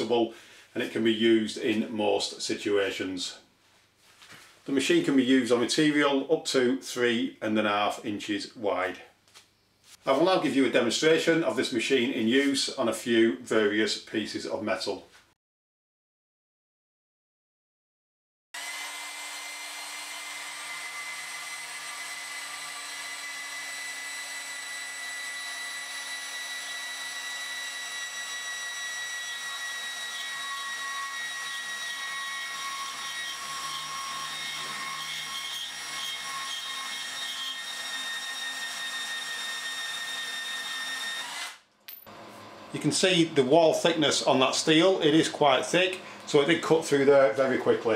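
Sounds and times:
bandsaw cutting steel pipe: 18.6 - 41.6.

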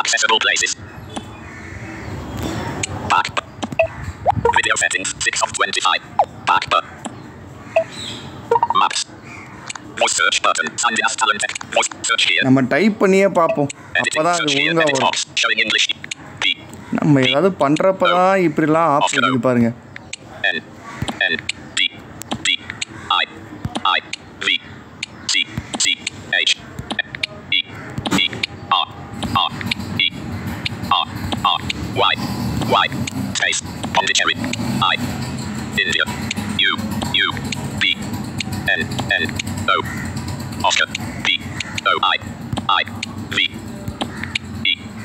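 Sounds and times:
synthesized screen-reader voice: 0.0 - 1.3, 2.8 - 7.2, 8.5 - 35.1, 35.7 - 39.9, 40.6 - 44.9
high electronic blip: 8.5 - 9.1.

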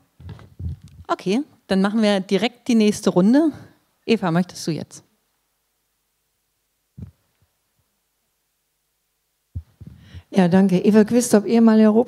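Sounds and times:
microphone handling thumps: 0.0 - 1.1, 7.0 - 7.5, 9.5 - 10.2.

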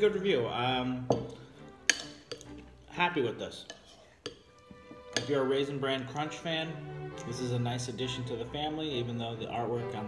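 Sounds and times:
metal spoon clinking on ceramic bowl: 1.1 - 2.5, 3.6 - 5.4.

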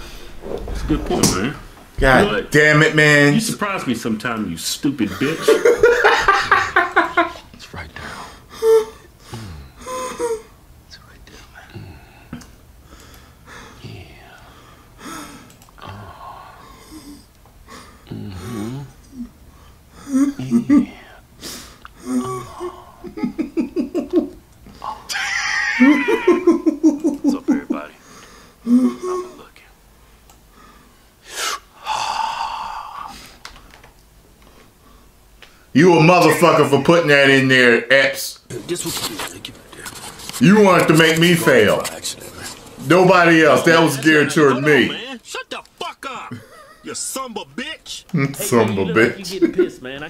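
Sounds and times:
faint breathing: 0.0 - 1.0, 8.0 - 10.5, 11.3 - 20.3, 28.0 - 33.6
man stifling laughter: 5.4 - 7.4, 25.0 - 27.8
sharp intake of breath: 30.5 - 33.4.

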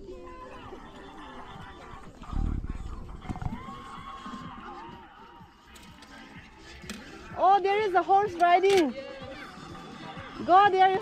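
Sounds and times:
background music: 0.0 - 11.0
background voices: 0.0 - 11.0.

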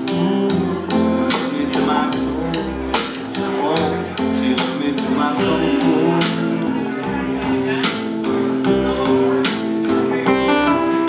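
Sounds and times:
acoustic guitar strumming: 0.0 - 11.0
upright bass notes: 0.0 - 11.0.

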